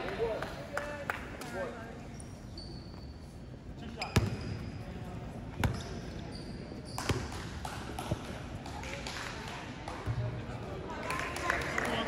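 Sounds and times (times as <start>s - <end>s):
basketball bouncing on court floor: 4.0s - 4.6s, 5.5s - 5.9s, 6.9s - 8.8s.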